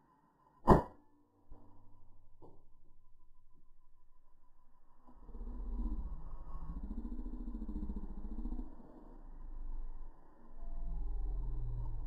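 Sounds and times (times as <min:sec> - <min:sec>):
steady low rumble: 0:01.4 - 0:12.0.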